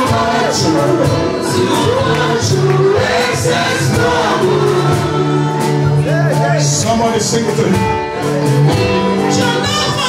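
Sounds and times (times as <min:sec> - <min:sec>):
group singing: 0:00.0 - 0:06.8
gospel music with guitar: 0:00.0 - 0:10.0.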